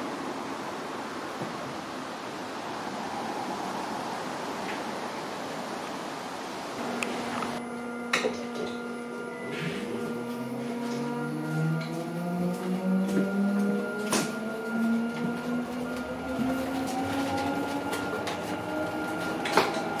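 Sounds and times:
electric bus drive whining: 0.0s - 20.0s
onboard equipment hum: 6.8s - 20.0s.

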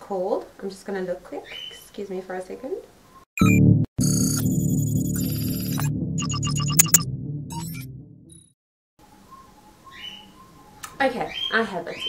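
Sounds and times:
faint bird chirping: 9.0s - 12.0s.

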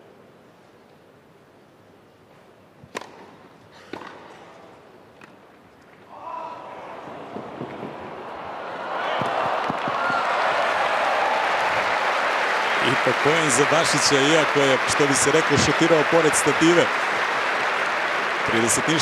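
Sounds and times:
tennis ball hit by racket: 2.9s - 3.3s
crowd exclaiming: 6.2s - 19.0s
crowd applause and cheering: 6.9s - 19.0s.

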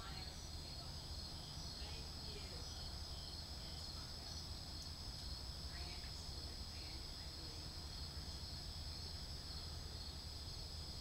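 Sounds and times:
night insects chorus: 0.0s - 11.0s.

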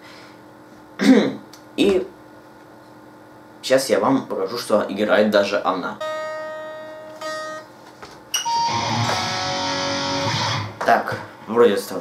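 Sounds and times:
electric guitar notes and chord: 6.0s - 7.6s, 8.4s - 10.9s.

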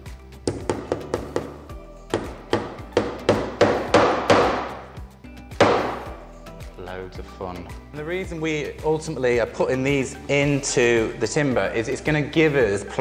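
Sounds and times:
hammer tapping metal studs into wood: 0.5s - 4.8s, 5.6s - 6.1s.

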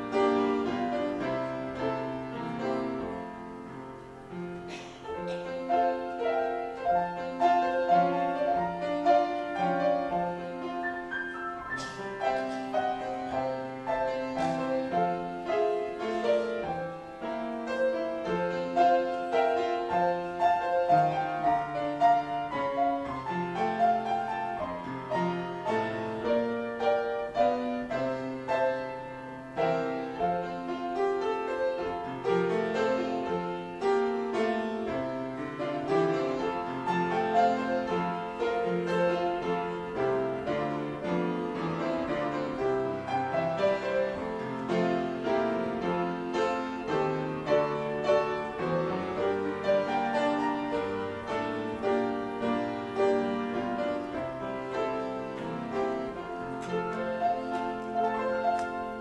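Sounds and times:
grand piano playing: 0.0s - 59.0s.

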